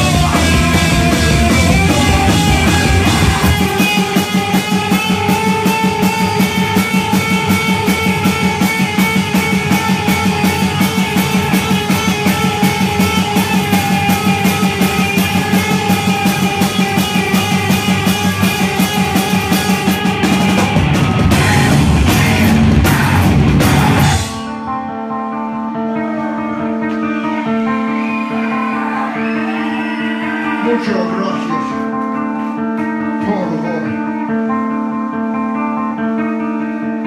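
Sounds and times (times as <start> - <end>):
heavy rock band playing: 0.0 - 37.0.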